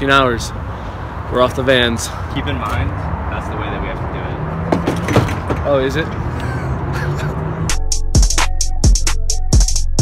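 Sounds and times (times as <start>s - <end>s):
sharp knocks of bikes: 4.7s - 5.7s.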